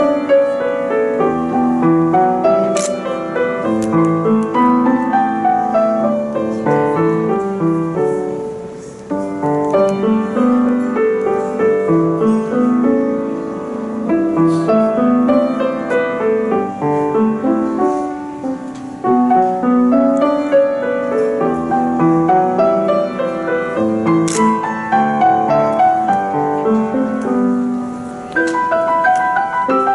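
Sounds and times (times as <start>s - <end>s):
solo grand piano: 0.0s - 29.9s.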